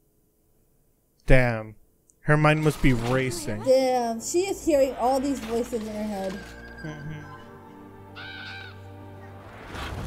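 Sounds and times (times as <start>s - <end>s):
crow cawing: 8.1s - 8.9s.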